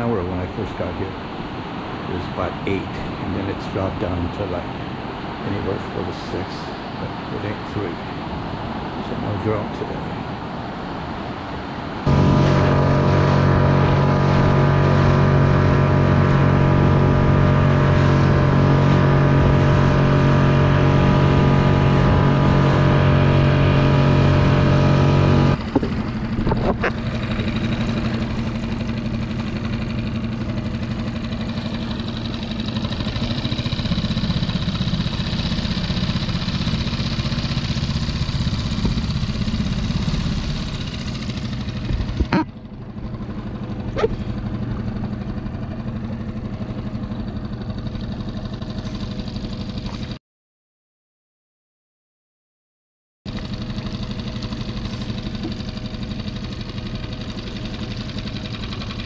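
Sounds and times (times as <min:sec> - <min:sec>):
outboard motor running: 0:00.0 - 0:50.2, 0:53.3 - 0:59.0.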